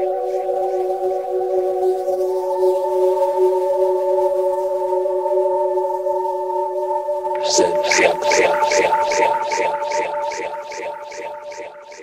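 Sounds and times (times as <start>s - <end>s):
trance music with held synth tone: 7.3s - 12.0s.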